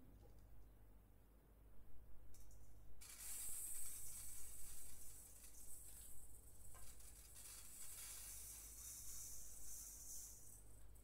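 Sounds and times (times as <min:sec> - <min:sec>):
hand percussion hissing rattle: 0:03.0 - 0:10.7.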